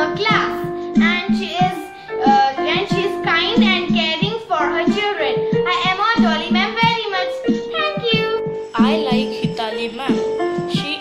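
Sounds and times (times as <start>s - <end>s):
girl singing: 0.0s - 11.0s
instrumental backing music: 0.0s - 11.0s.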